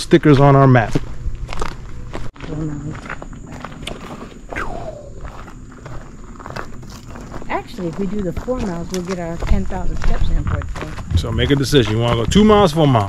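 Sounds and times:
footsteps on gravel trail: 0.2s - 13.0s.

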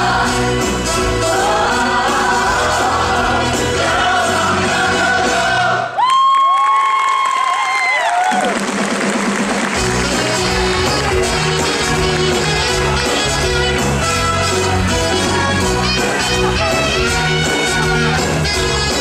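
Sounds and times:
band and ensemble singing: 0.0s - 6.0s
audience cheering: 5.8s - 11.0s.

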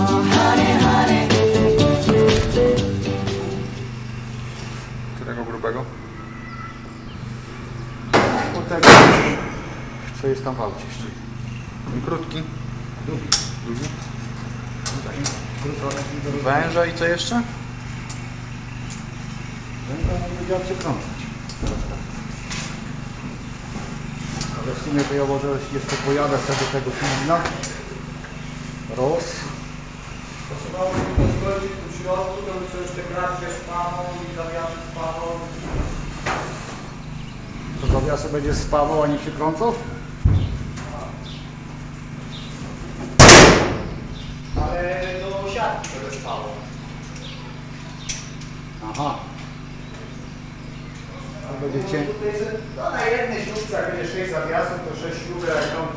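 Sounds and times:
engine idling: 0.0s - 55.9s
very loud bang: 8.1s - 10.0s, 43.2s - 44.1s
dull knock: 40.2s - 40.8s.

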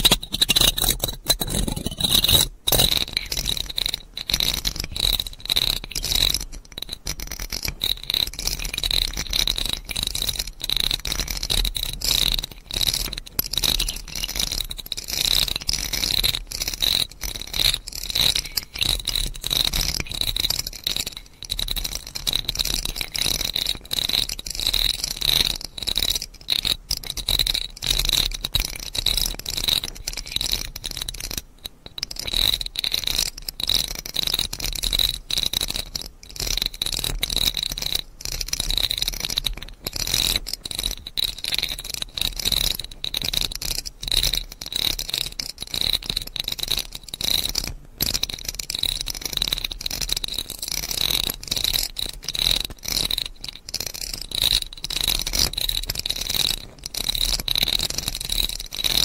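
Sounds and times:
scratchy rattle: 0.0s - 59.0s.

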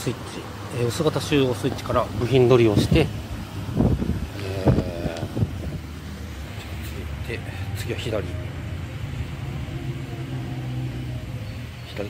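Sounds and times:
low mechanical hum: 1.9s - 12.0s.

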